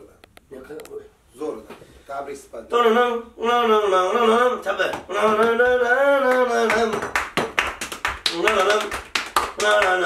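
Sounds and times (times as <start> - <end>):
man singing: 2.7 - 7.3, 8.2 - 10.0
people clapping in rhythm: 4.9 - 10.0.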